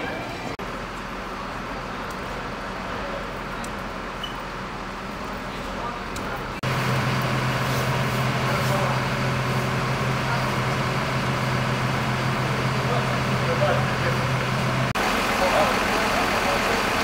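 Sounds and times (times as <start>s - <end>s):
diesel engine humming: 0.0s - 17.0s
street noise: 0.0s - 17.0s.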